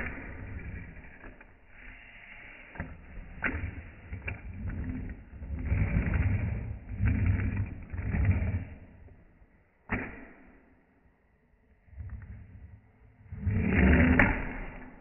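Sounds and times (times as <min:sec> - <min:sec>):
low rumbling scrape: 0:00.0 - 0:09.4, 0:11.9 - 0:15.0.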